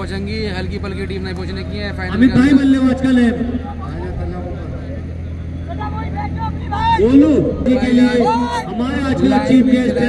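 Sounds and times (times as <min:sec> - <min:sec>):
faint voices talking: 0:00.0 - 0:10.0
steady low hum: 0:00.0 - 0:10.0
man's voice: 0:02.1 - 0:04.7, 0:07.0 - 0:10.0.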